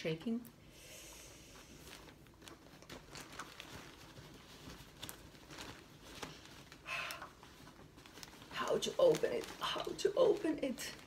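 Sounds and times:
plastic and fabric rustling: 0:01.3 - 0:11.0.

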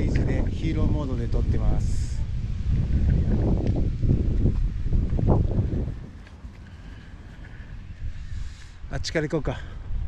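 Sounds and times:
wind rumbling on microphone: 0:00.0 - 0:10.0
footsteps: 0:02.8 - 0:08.0.

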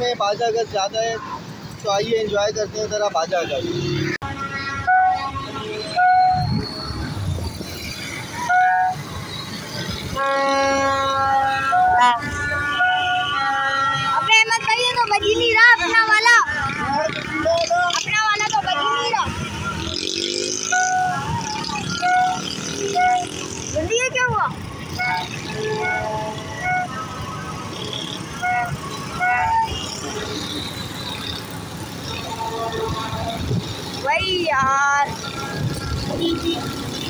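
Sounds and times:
motorcycle engines rumbling: 0:00.0 - 0:37.0
street traffic: 0:00.0 - 0:37.0
horns tooting: 0:02.0 - 0:37.0.

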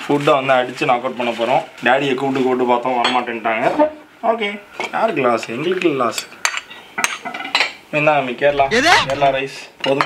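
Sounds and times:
plates and cutlery clinking: 0:06.1 - 0:07.8
person talking: 0:08.5 - 0:09.4.

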